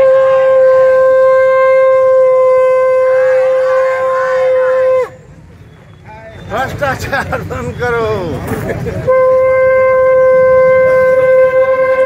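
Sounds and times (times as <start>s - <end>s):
conch shell blown: 0.0s - 5.2s, 9.1s - 12.0s.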